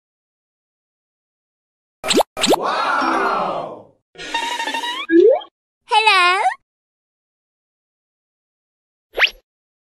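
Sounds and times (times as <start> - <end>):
cartoon bloop effects: 2.0 - 3.3, 4.4 - 5.5
swelling cartoon sound effect: 2.0 - 5.5.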